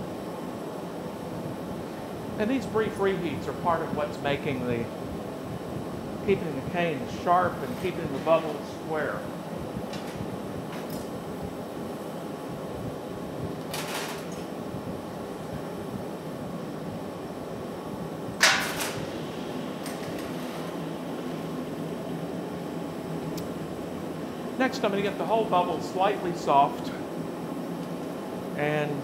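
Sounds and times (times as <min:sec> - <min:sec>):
gas furnace rushing: 0:00.0 - 0:29.0.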